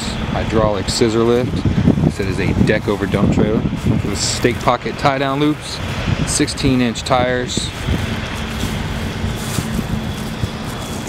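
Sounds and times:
low continuous hum: 0.0s - 11.0s.

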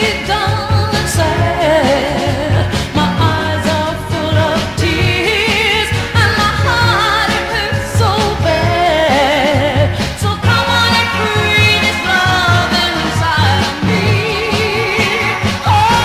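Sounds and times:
soul record with singing: 0.0s - 16.0s.

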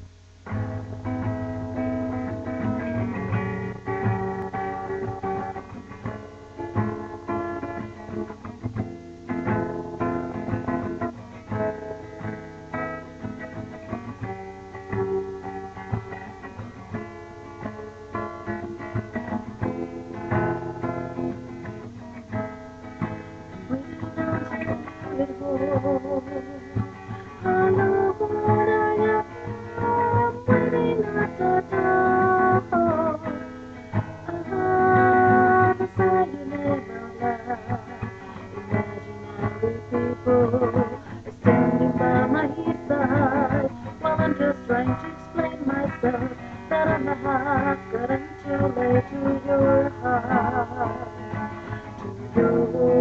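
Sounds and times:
acoustic guitar chords: 0.0s - 53.0s
woman singing: 23.6s - 53.0s.

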